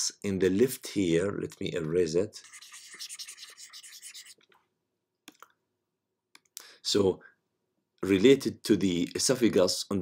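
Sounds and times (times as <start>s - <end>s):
stylus scratching on tablet screen: 2.4s - 4.4s.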